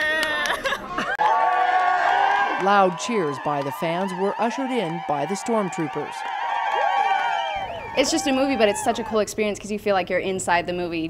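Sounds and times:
crowd cheering and screaming: 0.0s - 9.2s
swooping whoops: 0.0s - 9.2s.

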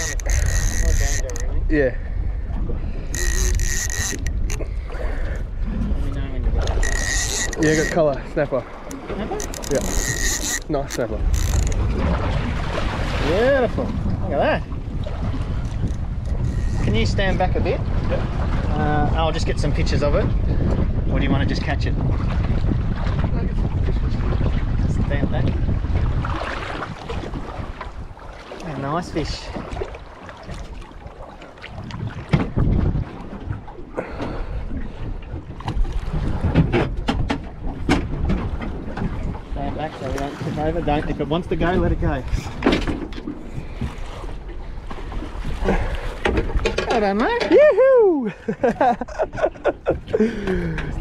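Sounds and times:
sharp knocks and splashes: 0.0s - 1.6s, 2.6s - 5.1s, 6.4s - 17.2s, 24.2s - 47.6s
choppy water: 0.0s - 51.0s
wind rumbling on microphone: 0.0s - 51.0s.

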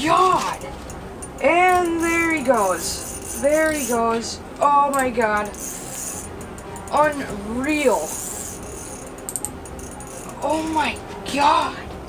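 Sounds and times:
low steady hum: 0.0s - 12.0s
fishing reel clicking: 1.3s - 7.2s, 7.8s - 10.6s.

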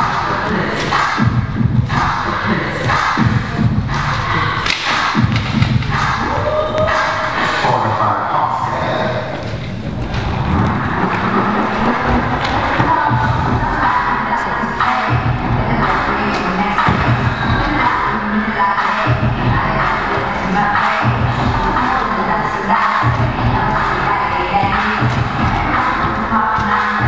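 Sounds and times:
music with repeating beat: 0.0s - 7.6s, 10.2s - 27.0s
audience cheering and shouting: 6.1s - 14.7s.

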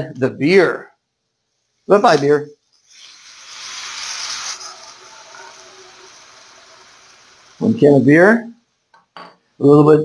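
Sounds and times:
liquid sizzling in hot pan: 2.1s - 8.9s.

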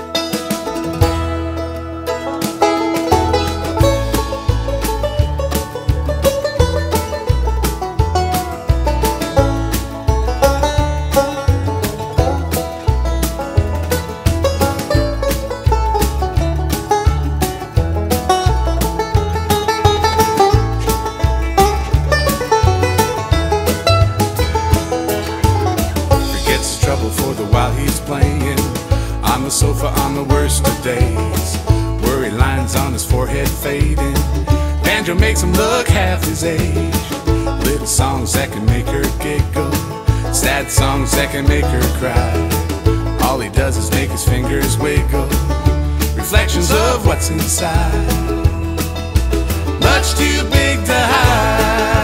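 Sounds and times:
banjo picking: 0.0s - 52.0s
bass: 0.0s - 52.0s
guitar: 0.0s - 52.0s
steady beat: 2.4s - 52.0s.

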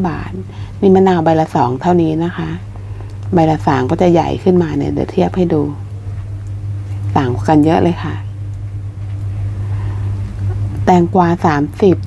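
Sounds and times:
woman speaking: 0.0s - 2.7s, 3.3s - 6.0s, 7.0s - 8.4s, 10.8s - 12.0s
low machine hum: 0.0s - 12.0s.

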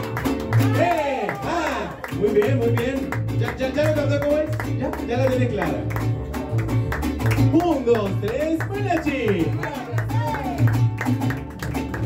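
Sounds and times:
mariachi band playing: 0.0s - 12.0s.

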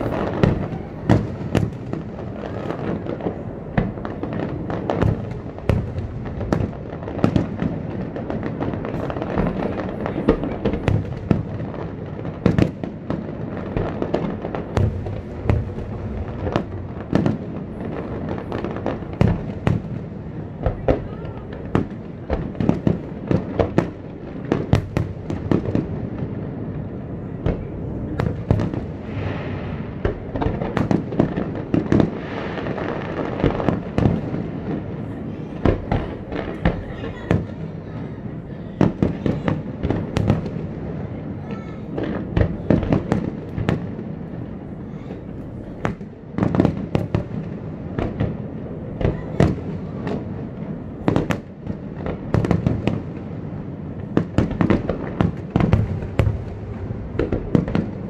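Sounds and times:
continuous fireworks rumble: 0.0s - 58.0s
fireworks bursting with bangs: 0.0s - 58.0s.

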